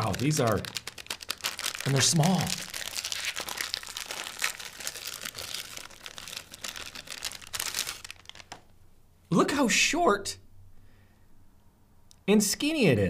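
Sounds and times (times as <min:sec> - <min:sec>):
plastic wrapper crinkling: 0:00.0 - 0:08.8.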